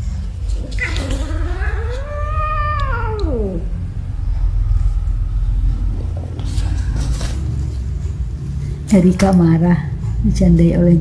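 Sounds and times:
steady low rumble: 0:00.0 - 0:11.0
cat yowling: 0:00.6 - 0:03.8.

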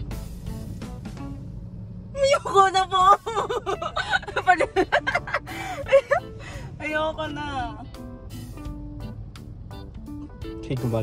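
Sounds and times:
car cabin rumble: 0:00.0 - 0:11.0
woman talking: 0:02.2 - 0:05.1, 0:06.8 - 0:07.8
woman laughing: 0:02.4 - 0:06.6.

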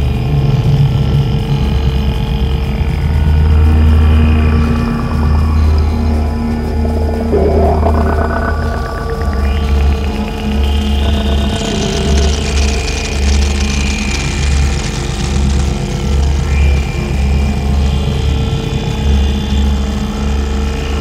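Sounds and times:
steady drone and high tones: 0:02.5 - 0:21.0
low electronic bass throb: 0:02.6 - 0:20.1.

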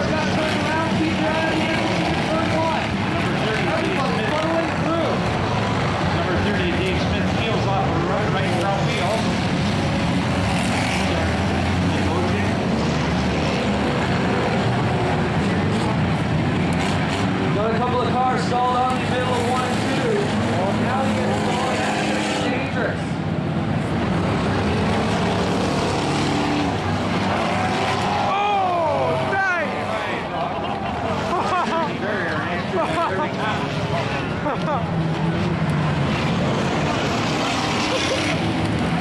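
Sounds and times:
race car engines: 0:00.0 - 0:39.0.

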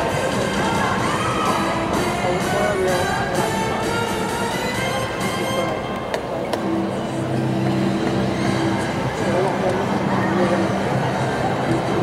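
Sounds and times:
arena background noise: 0:00.0 - 0:12.0
music playing in sports hall: 0:00.0 - 0:12.0.

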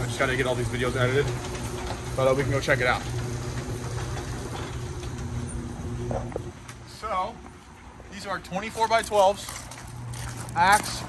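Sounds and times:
low mechanical drone: 0:00.0 - 0:08.8.

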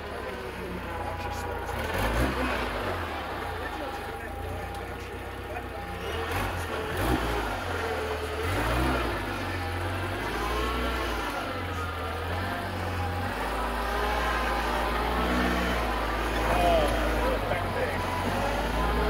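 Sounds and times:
truck engine revving: 0:00.0 - 0:19.0.

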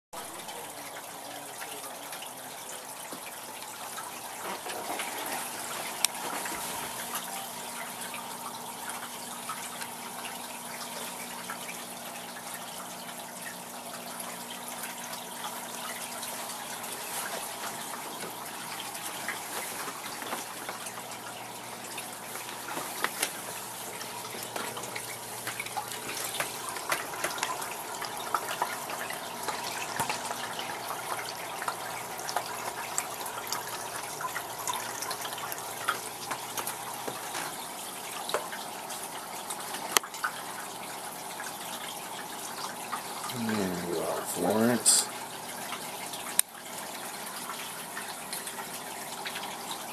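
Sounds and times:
aquarium water circulating: 0:00.2 - 0:49.9
water drips and pops: 0:05.9 - 0:40.5, 0:46.1 - 0:46.8.

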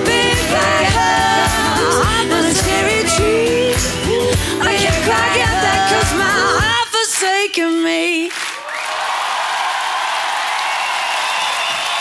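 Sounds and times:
audience applauding: 0:08.3 - 0:12.0
audience whooping: 0:08.6 - 0:12.0.

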